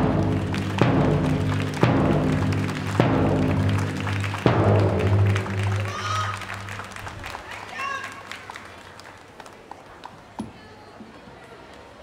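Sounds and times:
bass drum struck slowly: 0.0s - 5.9s.

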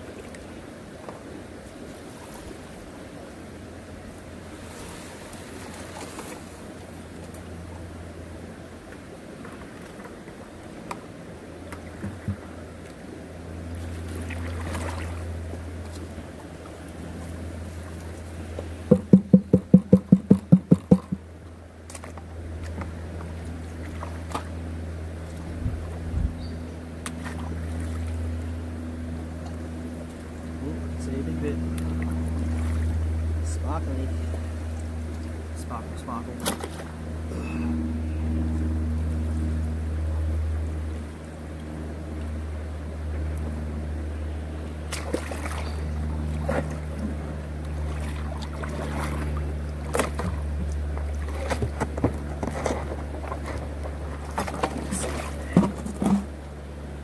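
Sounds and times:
water pump humming: 2.6s - 57.0s
water rushing through sluice: 8.1s - 19.2s, 44.6s - 56.5s
sharp knocks: 18.9s - 21.2s.

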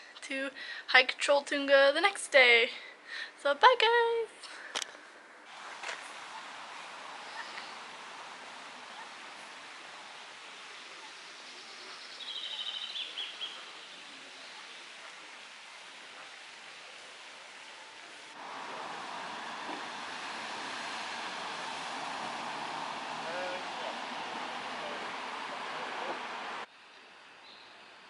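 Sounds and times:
outdoor background noise: 0.0s - 28.0s
high bird chirps: 11.0s - 13.7s.

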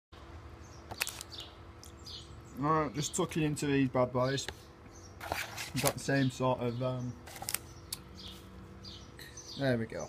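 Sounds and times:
faint bird chirps: 6.1s - 10.0s.

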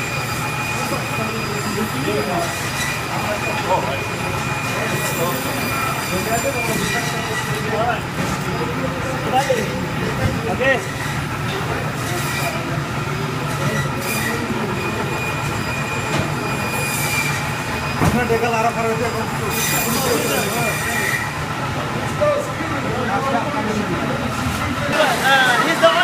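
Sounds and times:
background chatter: 0.0s - 26.0s
band saws whining: 0.0s - 26.0s
saw blades screeching: 0.0s - 26.0s.

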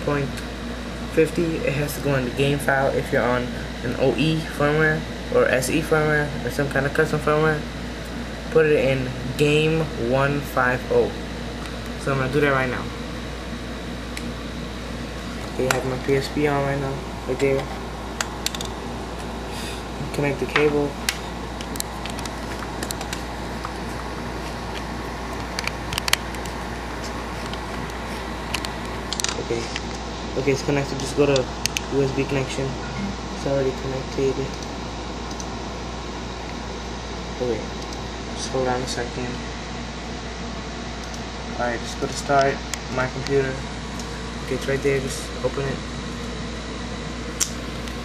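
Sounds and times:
air conditioner humming: 0.0s - 48.0s.

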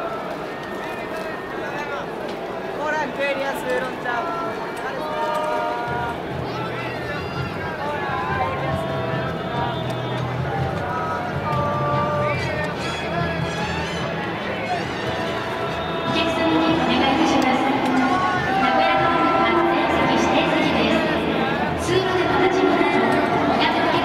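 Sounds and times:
crowd voices talking: 0.0s - 24.0s
stadium music: 0.0s - 24.0s.

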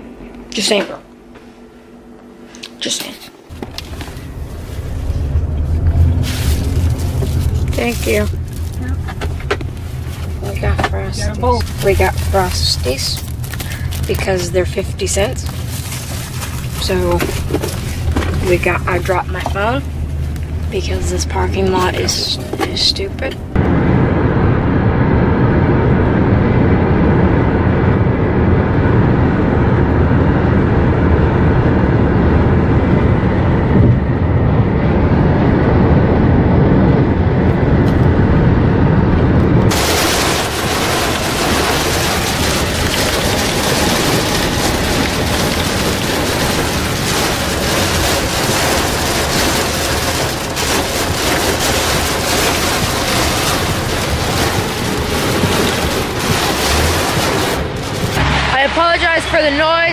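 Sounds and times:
car road and engine rumble: 0.0s - 59.9s
heavy rain pounding a car: 3.5s - 59.9s
tyres spraying on flooded road: 4.1s - 9.2s, 9.9s - 23.4s, 39.7s - 59.9s.

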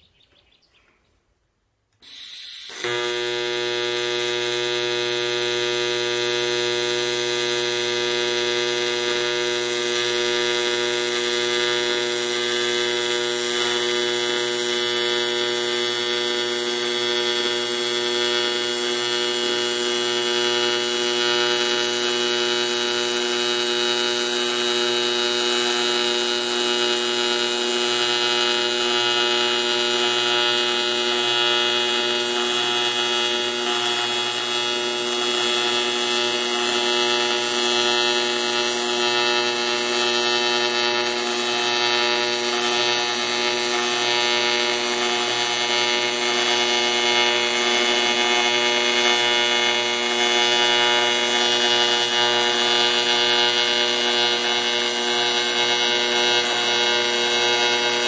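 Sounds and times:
welding arc buzzing hum: 2.0s - 58.0s.

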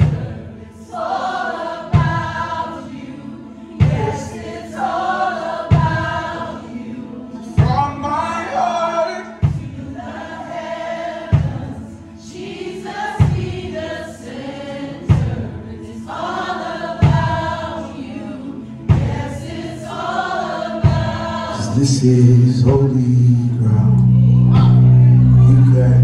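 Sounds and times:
voices singing a slow song: 0.0s - 26.0s
bass guitar notes: 21.7s - 26.0s.

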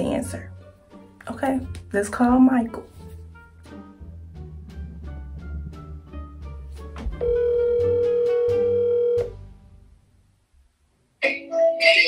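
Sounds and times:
plucked background music with bass: 0.0s - 10.0s
phone ringback tone: 7.2s - 9.3s.

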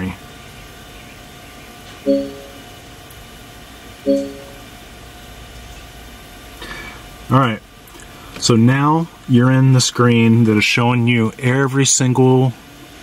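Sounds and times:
electronic chimes: 2.1s - 2.7s, 4.1s - 4.6s.

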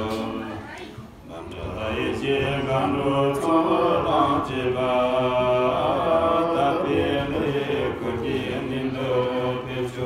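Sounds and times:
monks chanting together: 0.0s - 10.0s.

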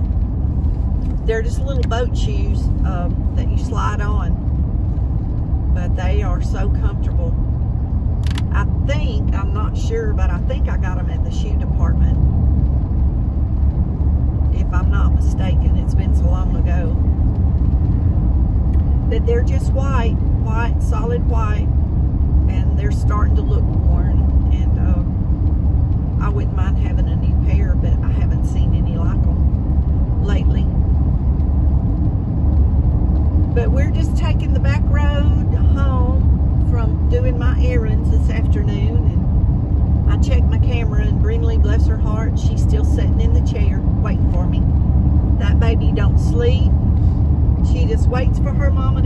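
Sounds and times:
car driving rumble from cabin: 0.0s - 49.0s
person talking: 1.2s - 4.3s.

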